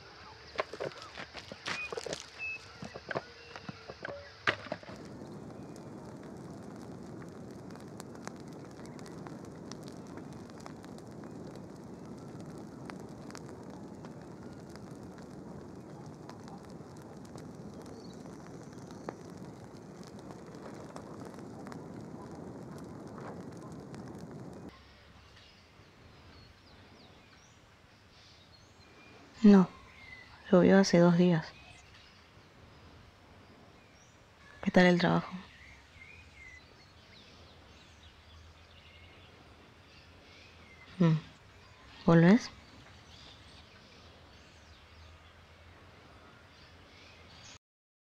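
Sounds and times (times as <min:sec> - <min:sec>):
low rushing noise: 0:00.0 - 0:30.5
faint crackles: 0:00.0 - 0:47.6.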